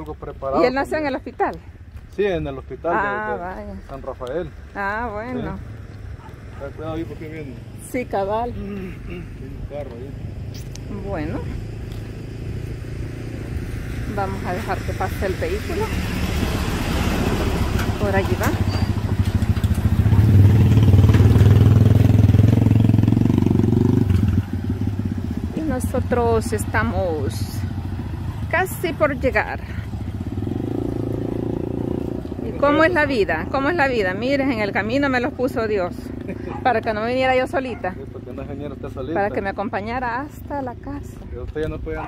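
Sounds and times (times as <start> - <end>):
van engine humming: 0.0 - 42.0.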